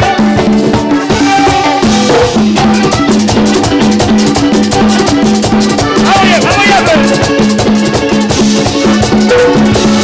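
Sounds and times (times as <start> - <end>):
live band with accordion: 0.0 - 10.0.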